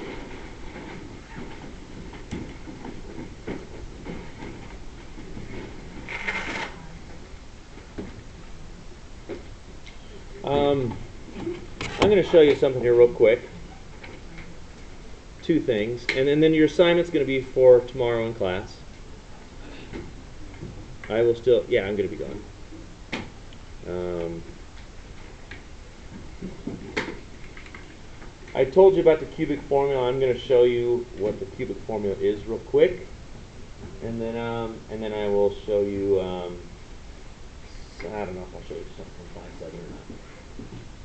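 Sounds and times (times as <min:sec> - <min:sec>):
low room noise: 0:00.0 - 0:41.0.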